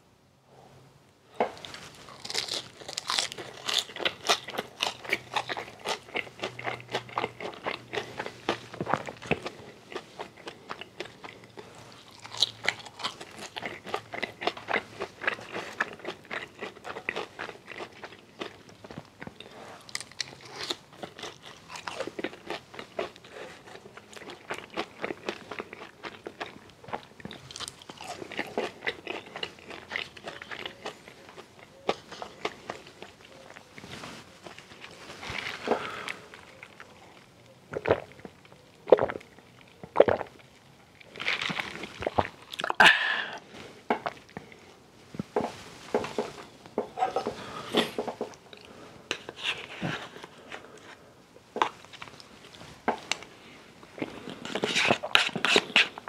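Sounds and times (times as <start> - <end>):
crunchy chewing of fries: 1.4 - 44.9, 45.5 - 56.0.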